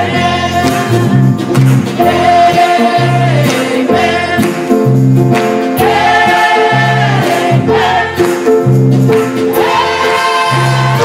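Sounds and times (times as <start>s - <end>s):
bass line: 0.0s - 11.0s
church choir singing gospel: 0.0s - 11.0s
drum kit with cymbals: 0.0s - 11.0s
guitar: 0.0s - 11.0s
piano: 0.0s - 11.0s.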